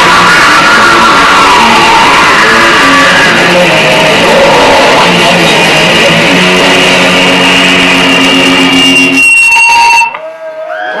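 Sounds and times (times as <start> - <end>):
electric guitars ringing chord: 0.0 - 9.2
sliding bending guitar tones: 0.0 - 10.2
high steady feedback whine: 0.0 - 11.0.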